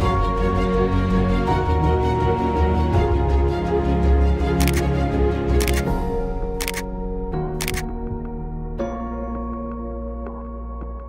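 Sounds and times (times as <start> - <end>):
background music with bass: 0.0 - 11.0
camera shutter clicks: 4.6 - 4.9, 5.6 - 5.9, 6.6 - 6.9, 7.6 - 7.9.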